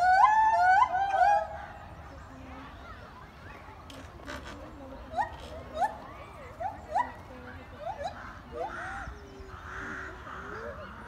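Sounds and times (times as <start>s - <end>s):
gibbons calling: 0.0s - 11.0s.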